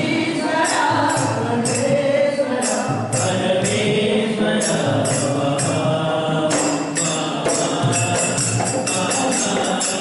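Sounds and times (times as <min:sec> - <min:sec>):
hand drum: 0:00.0 - 0:10.0
man singing into a microphone: 0:00.0 - 0:10.0
metallic jingling percussion: 0:00.0 - 0:10.0.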